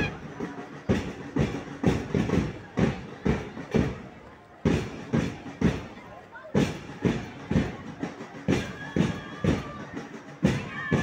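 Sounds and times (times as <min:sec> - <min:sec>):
drum beaten in marching rhythm: 0:00.0 - 0:11.0.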